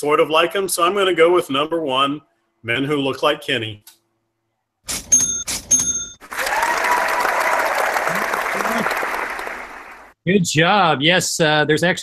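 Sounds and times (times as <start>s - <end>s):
ringing ding: 5.1s - 6.2s
crowd applause: 6.2s - 10.2s.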